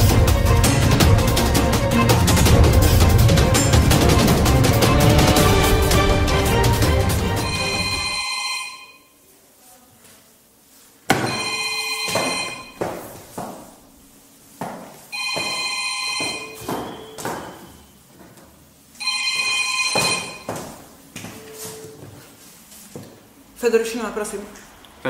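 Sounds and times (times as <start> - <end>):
mobile phone ringing: 7.4 - 9.2, 11.2 - 12.8, 15.1 - 17.8, 19.0 - 22.1.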